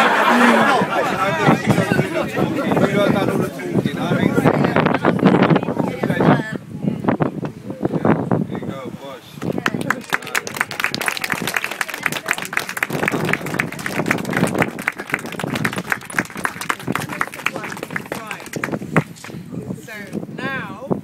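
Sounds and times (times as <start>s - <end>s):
voices chattering: 0.0s - 19.0s
small crowd clapping: 9.4s - 19.4s.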